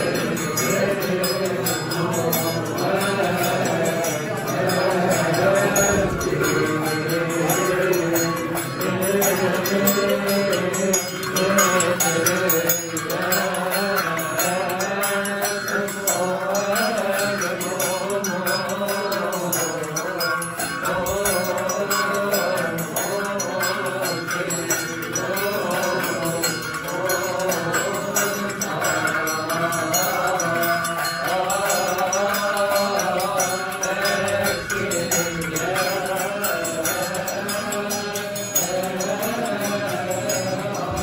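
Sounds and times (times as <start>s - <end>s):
hand cymbals: 0.0s - 41.0s
men chanting a hymn: 0.0s - 41.0s.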